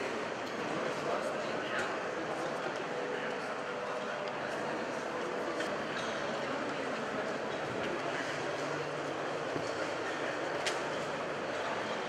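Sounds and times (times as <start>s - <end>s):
busy exhibition hall din: 0.0s - 12.0s.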